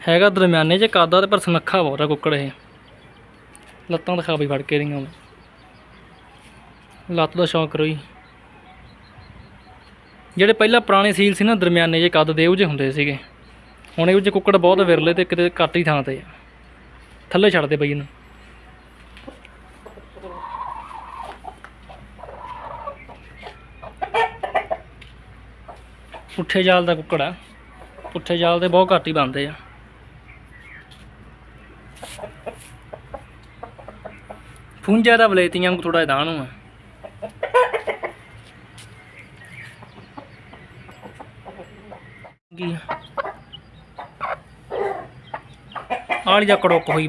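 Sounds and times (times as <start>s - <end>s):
chickens clucking: 0.1s - 47.0s
sharp chicken calls: 19.2s - 25.0s, 31.9s - 34.8s, 36.8s - 47.0s.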